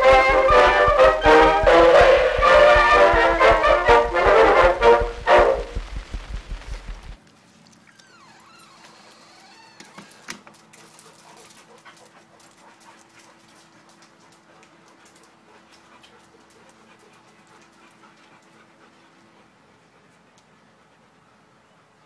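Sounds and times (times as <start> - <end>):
dog panting: 0.0 - 7.2, 10.8 - 21.7
faint low hum: 0.0 - 8.8.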